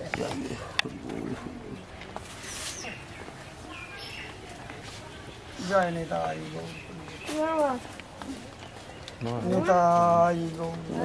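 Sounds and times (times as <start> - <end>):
distant voices murmuring: 0.0 - 11.0
high bird calls: 2.4 - 4.5.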